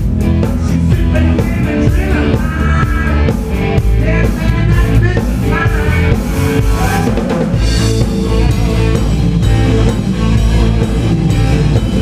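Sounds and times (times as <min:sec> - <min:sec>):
blues-rock band playing: 0:00.0 - 0:12.0
drum strokes: 0:00.0 - 0:12.0.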